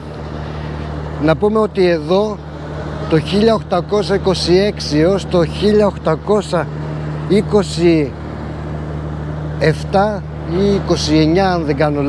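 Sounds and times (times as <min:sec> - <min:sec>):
low engine hum: 0:00.0 - 0:12.0
traffic noise: 0:00.0 - 0:12.0
man speaking: 0:01.2 - 0:02.4, 0:03.0 - 0:08.2, 0:09.6 - 0:12.0.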